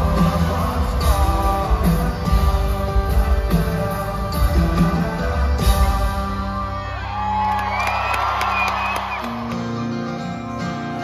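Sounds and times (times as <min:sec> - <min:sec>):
guitar: 0:00.0 - 0:11.0
audience cheering and whooping: 0:06.8 - 0:09.8.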